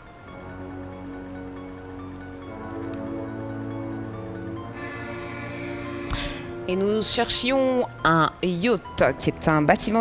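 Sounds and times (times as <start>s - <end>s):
quiz show background music chords: 0.5s - 7.2s.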